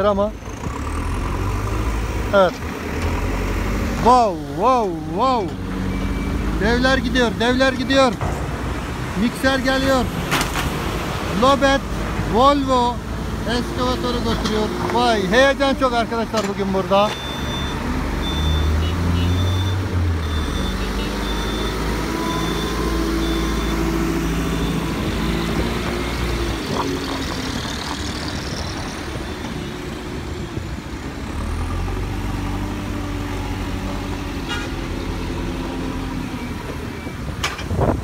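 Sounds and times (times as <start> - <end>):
dump truck engine running: 0.0 - 37.8
diesel engine working under load: 0.0 - 38.0
high intermittent beeping: 17.1 - 25.3.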